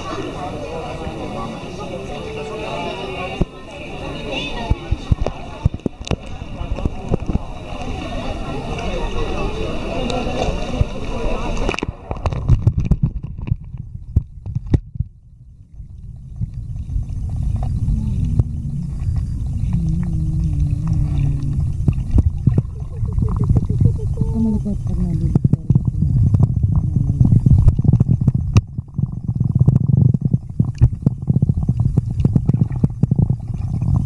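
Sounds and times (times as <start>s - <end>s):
muffled underwater rumbling: 0.0s - 34.0s.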